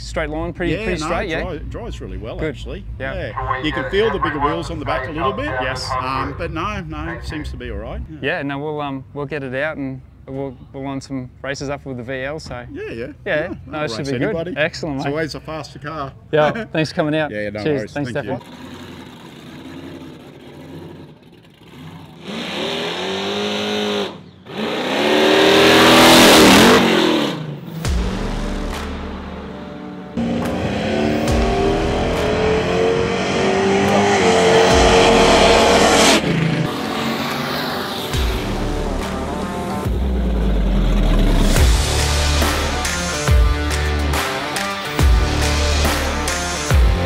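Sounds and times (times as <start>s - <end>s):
hot rod engine revving: 18.4s - 47.0s
music: 27.8s - 36.2s, 37.8s - 47.0s.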